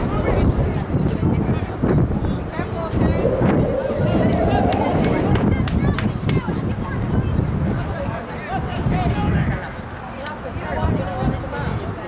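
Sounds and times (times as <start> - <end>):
wind rumble on microphone: 2.0 - 7.7.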